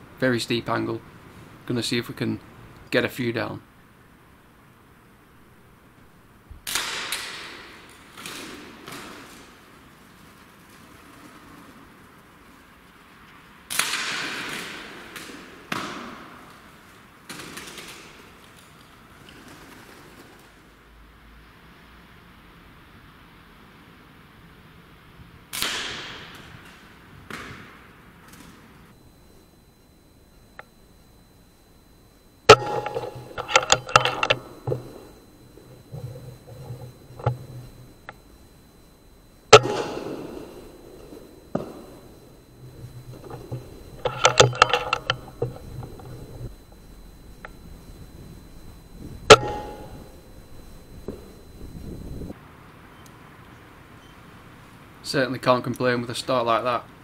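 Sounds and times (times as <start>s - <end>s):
air rifle shots ringing: 25.5s - 26.5s, 32.5s - 35.1s, 39.5s - 46.1s, 49.3s - 50.1s.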